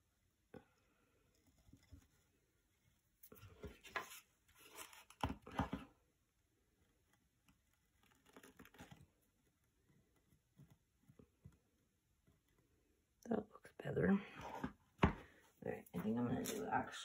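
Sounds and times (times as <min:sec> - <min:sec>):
scouring pad crinkling and scraping: 0:15.7 - 0:17.0.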